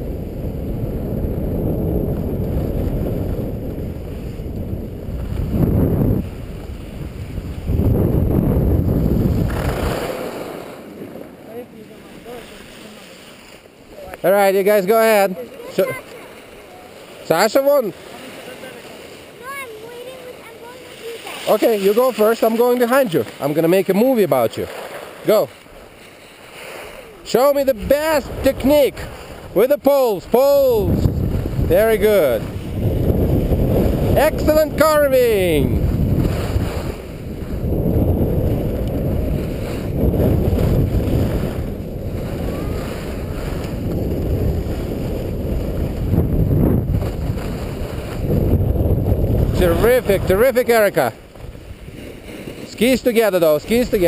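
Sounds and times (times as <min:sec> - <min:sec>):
wind hiss on microphone: 0:00.0 - 0:10.8, 0:30.4 - 0:54.0.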